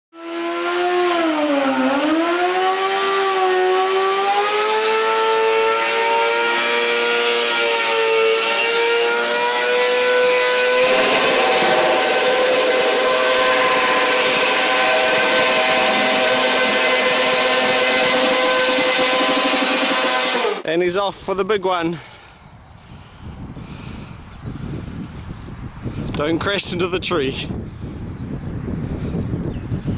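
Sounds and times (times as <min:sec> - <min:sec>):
motorcycle engine revving: 0:08.2 - 0:20.6.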